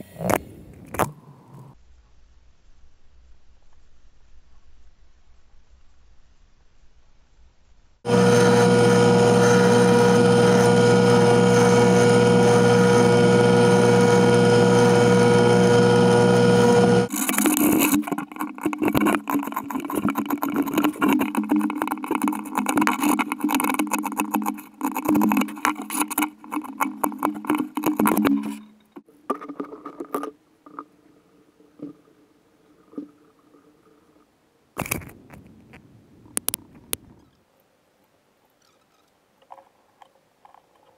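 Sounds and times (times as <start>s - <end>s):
power tool running: 8.1s - 28.7s
scratchy wood cutting: 8.1s - 28.8s.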